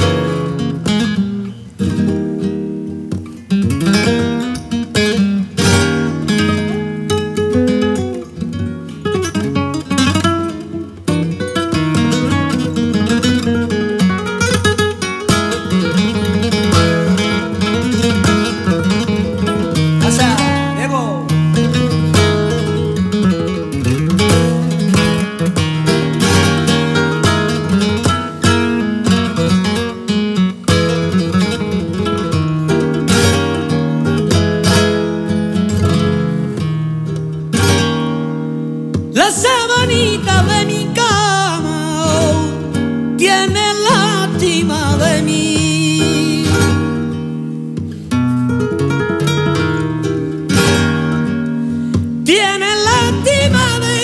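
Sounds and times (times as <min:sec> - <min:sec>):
flamenco guitar playing: 0:00.0 - 0:54.0.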